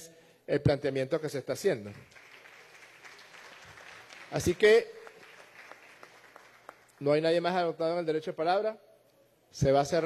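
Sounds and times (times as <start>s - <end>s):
scattered applause: 1.9s - 7.1s.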